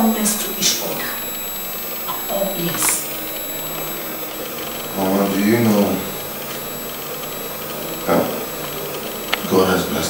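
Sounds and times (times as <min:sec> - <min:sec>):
faint hum: 0:00.0 - 0:10.0
thin steady tones: 0:00.0 - 0:10.0.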